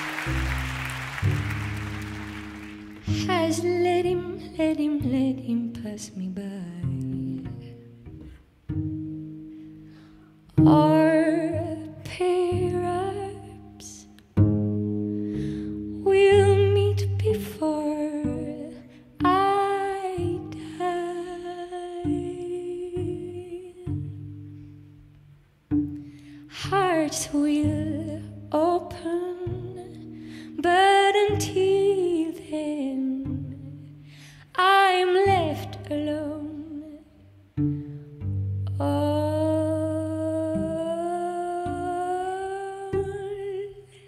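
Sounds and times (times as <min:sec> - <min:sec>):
low cello notes: 0:00.0 - 0:44.0
woman singing jazz ballad: 0:03.0 - 0:07.6, 0:16.0 - 0:24.0, 0:26.6 - 0:29.9, 0:30.6 - 0:33.7, 0:38.7 - 0:43.9.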